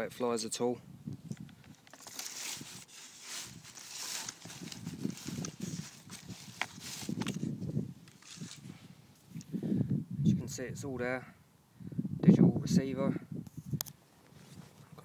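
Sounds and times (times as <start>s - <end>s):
foam model plane rustling: 1.7s - 8.9s.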